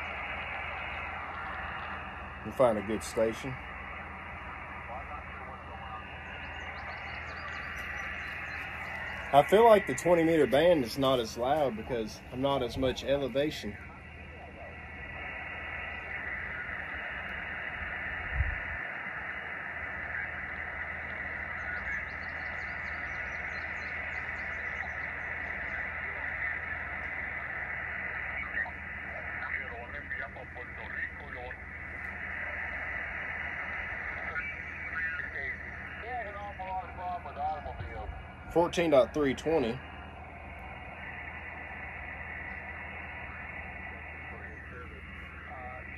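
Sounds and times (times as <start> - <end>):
faint radio voices: 0.0 - 45.9
radio static hiss: 0.0 - 45.9.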